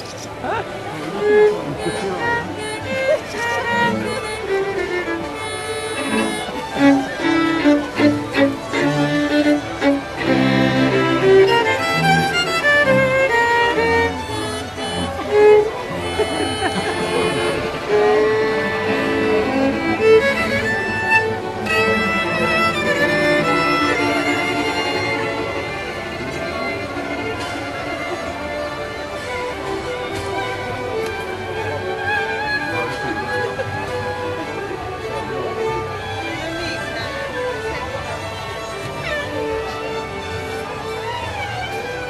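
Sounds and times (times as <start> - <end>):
fiddles playing together: 0.0 - 42.0.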